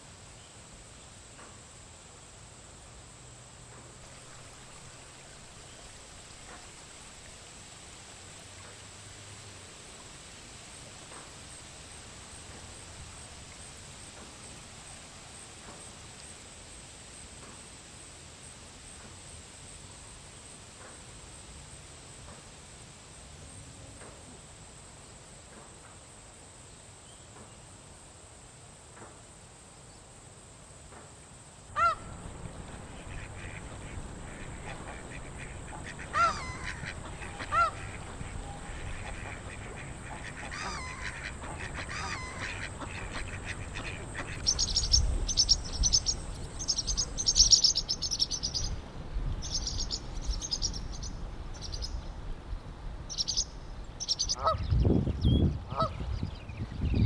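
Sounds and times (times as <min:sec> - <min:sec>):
geese honking: 0:31.8 - 0:44.9
small birds chirping: 0:31.8 - 0:48.8, 0:49.4 - 0:52.0, 0:53.1 - 0:57.0.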